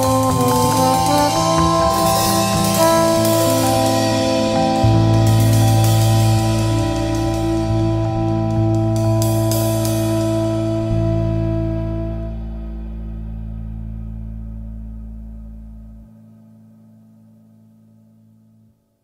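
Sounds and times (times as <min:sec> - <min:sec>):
cymbal strokes: 0:00.0 - 0:10.7
lounge jazz: 0:00.0 - 0:14.4.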